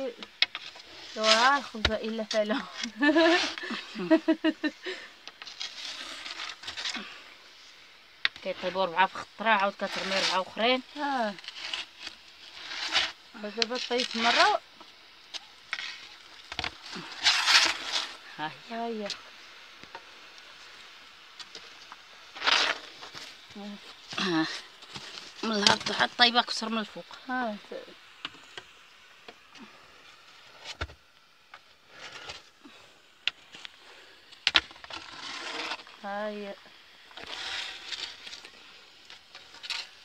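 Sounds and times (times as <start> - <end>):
woman speaking: 1.2 - 4.4, 8.4 - 11.4, 13.4 - 14.6, 18.4 - 19.2, 23.6 - 24.6, 25.4 - 28.0, 36.0 - 36.6.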